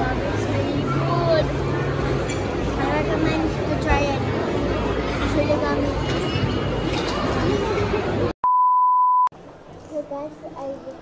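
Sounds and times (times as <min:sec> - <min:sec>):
busy background noise: 0:00.0 - 0:08.4, 0:09.3 - 0:11.0
electronic bleep: 0:08.4 - 0:09.3.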